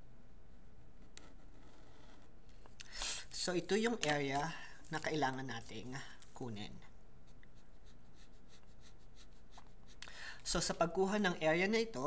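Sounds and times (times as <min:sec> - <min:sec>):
low steady hum: 0:00.0 - 0:12.0
marker scratching on paper: 0:07.3 - 0:10.0.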